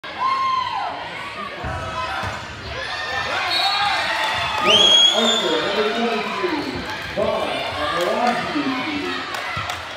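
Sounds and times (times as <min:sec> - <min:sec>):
voices echoing in gym: 0:00.0 - 0:09.9.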